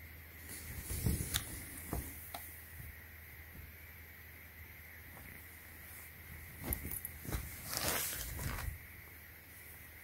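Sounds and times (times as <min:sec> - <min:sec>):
fabric and plastic bag rustling: 0:05.1 - 0:08.8.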